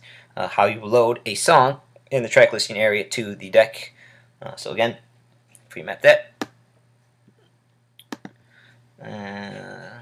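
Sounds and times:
computer mouse clicks: 0:08.0 - 0:08.4.

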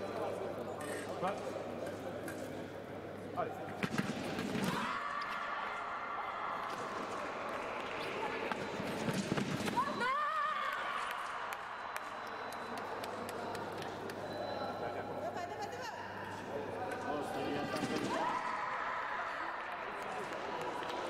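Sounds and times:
women shouting: 0:09.8 - 0:10.8.

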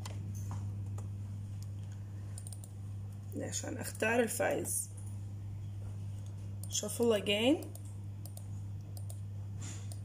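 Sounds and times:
low electrical hum: 0:00.0 - 0:10.0
sharp ticks from speaker: 0:02.4 - 0:02.8, 0:07.6 - 0:09.2.

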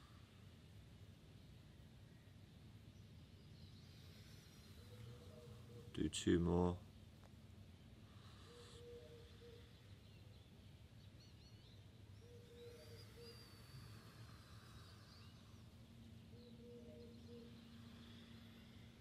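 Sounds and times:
low steady bird call: 0:00.0 - 0:19.0
high bird chirps and trills: 0:07.8 - 0:19.0.

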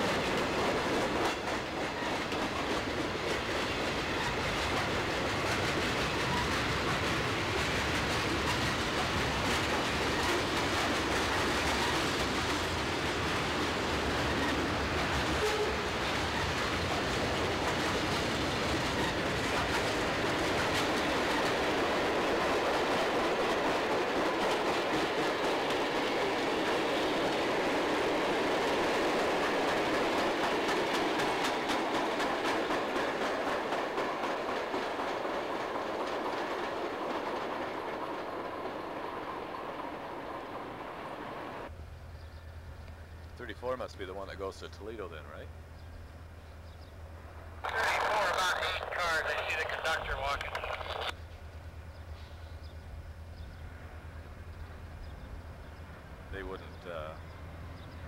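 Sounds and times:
freight train wheels clattering: 0:00.0 - 0:39.8.

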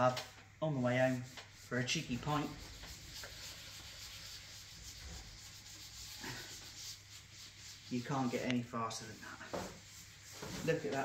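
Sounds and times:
pad scrubbing on wood: 0:01.1 - 0:11.0.

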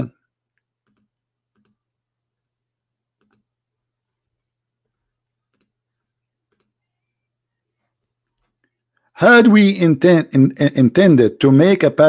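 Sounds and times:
faint low hum: 0:00.0 - 0:09.2.

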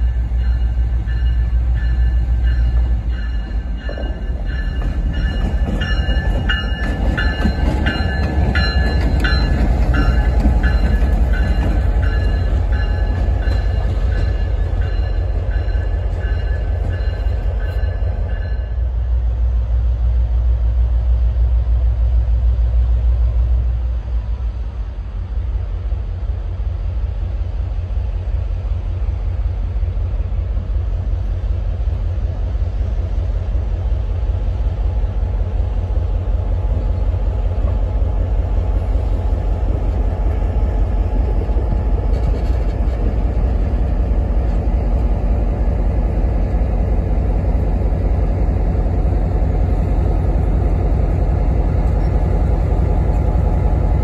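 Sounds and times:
diesel locomotive engine rumble: 0:00.0 - 0:54.0
wheels clicking on track: 0:41.1 - 0:44.6.

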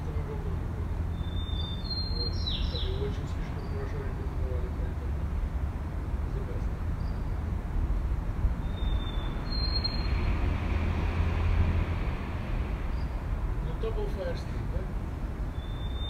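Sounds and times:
distant voices in conversation: 0:00.0 - 0:16.0
low traffic rumble: 0:00.0 - 0:16.0
vehicle passing: 0:00.0 - 0:16.0.

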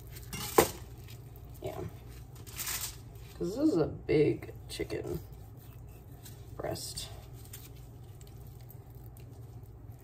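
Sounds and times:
handling raw chicken: 0:00.0 - 0:10.0.

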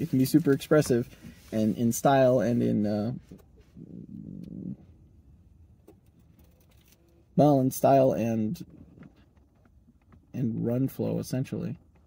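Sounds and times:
car cabin background: 0:00.0 - 0:12.0.

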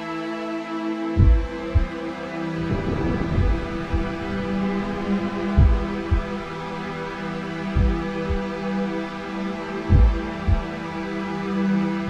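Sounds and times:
slow background music: 0:00.0 - 0:12.0
low double thump: 0:02.7 - 0:04.2.

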